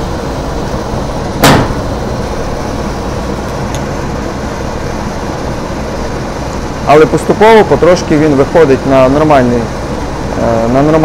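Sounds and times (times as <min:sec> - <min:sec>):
dehumidifier humming: 0:00.0 - 0:11.0.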